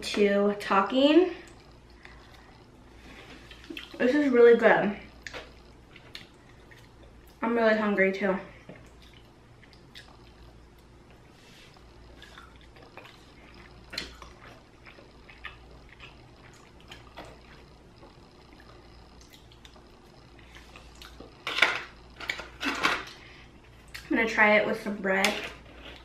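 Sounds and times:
chewing and mouth clicks: 0:03.4 - 0:04.0, 0:05.2 - 0:07.4, 0:08.7 - 0:21.4.

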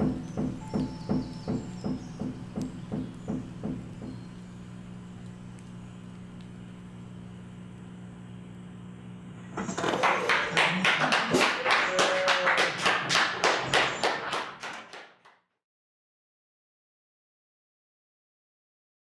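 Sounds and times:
low steady hum: 0:00.0 - 0:11.6
small audience applause: 0:09.8 - 0:15.4.

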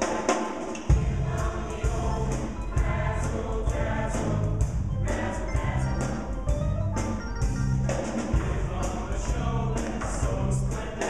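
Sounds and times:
live band: 0:00.0 - 0:09.0
drums and bass beat: 0:00.0 - 0:11.0
choir singing: 0:00.6 - 0:06.4, 0:07.8 - 0:11.0.

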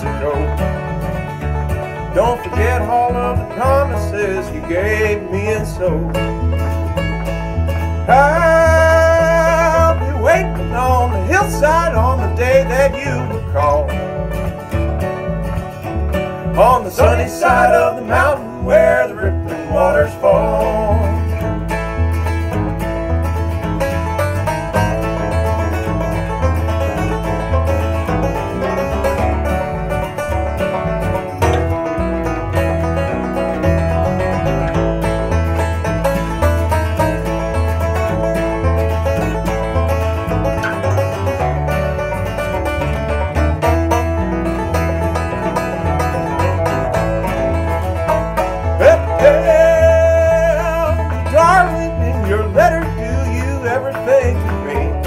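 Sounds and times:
banjo picking a lead: 0:00.0 - 0:55.0
electric bass alternating notes: 0:00.0 - 0:55.0
strummed acoustic guitars: 0:00.0 - 0:55.0.

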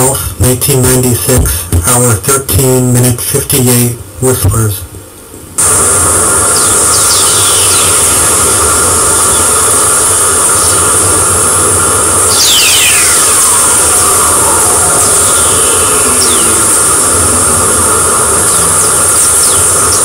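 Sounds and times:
loud steady hiss: 0:00.0 - 0:20.0
falling whistling tones: 0:06.3 - 0:20.0.

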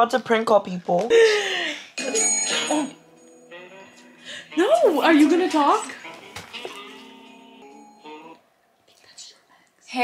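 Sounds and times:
faint whispering: 0:08.9 - 0:10.0.

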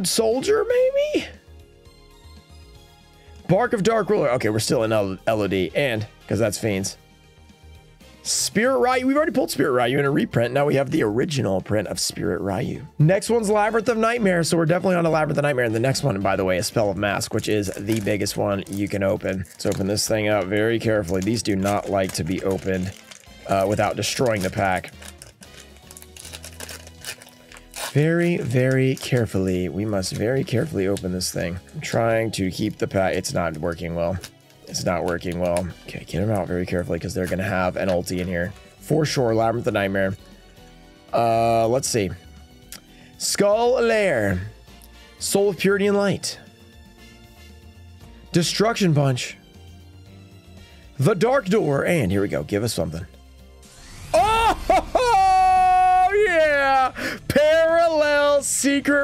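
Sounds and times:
man yelping excitedly: 0:00.4 - 0:01.3, 0:54.2 - 0:58.5
wrapper crinkling and tearing: 0:16.6 - 0:36.5.

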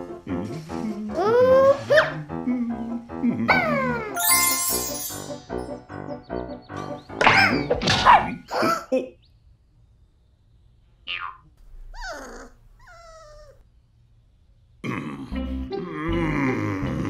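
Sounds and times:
cartoon music: 0:03.5 - 0:07.0
cartoon sound effects: 0:04.1 - 0:05.5.

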